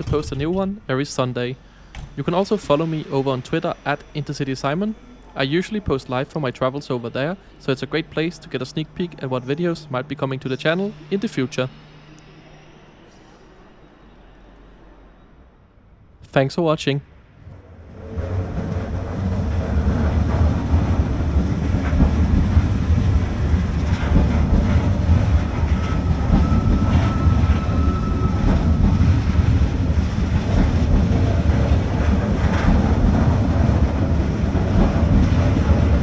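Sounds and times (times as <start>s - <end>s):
electric train rumbling: 0.0s - 36.0s
high brake squeal: 9.2s - 15.2s, 25.5s - 29.4s
rail clicks: 17.4s - 36.0s.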